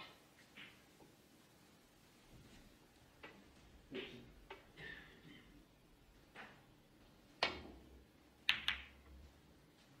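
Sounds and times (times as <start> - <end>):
snooker balls clicking together: 8.4 - 9.1.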